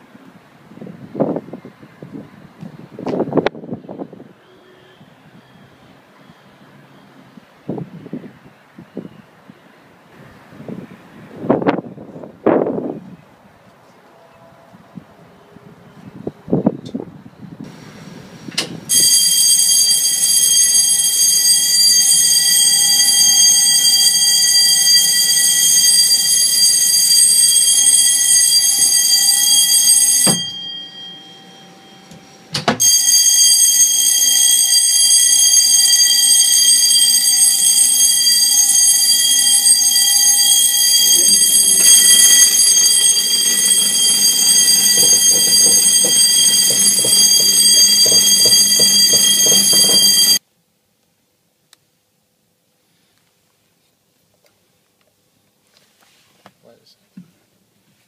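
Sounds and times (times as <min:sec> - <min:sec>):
high-pitched alarm tone: 0:18.9 - 0:50.4.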